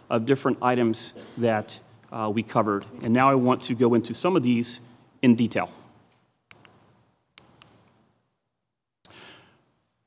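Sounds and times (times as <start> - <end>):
soft breath close to microphone: 9.1 - 9.7.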